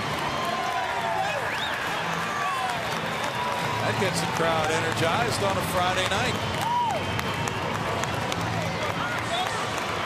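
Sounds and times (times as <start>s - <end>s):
crowd clapping and cheering: 0.0s - 10.0s.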